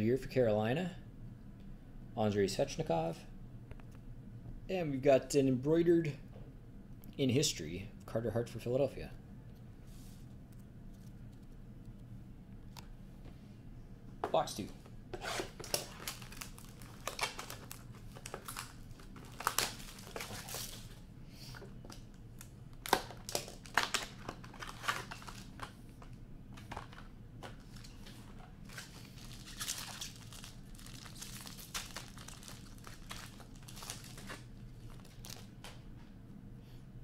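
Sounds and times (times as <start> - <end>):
plastic wrapping tearing and crinkling: 15.2 - 21.0, 21.9 - 25.7, 27.6 - 35.6.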